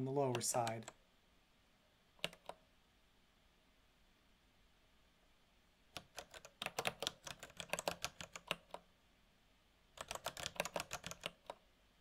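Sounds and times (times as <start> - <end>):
computer keyboard typing: 0.2 - 1.0, 2.2 - 2.6, 6.0 - 8.8, 10.0 - 11.6.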